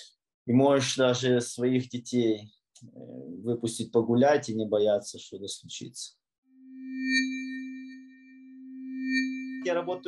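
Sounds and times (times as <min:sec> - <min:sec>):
electronic chime-like tone: 0:06.5 - 0:10.0.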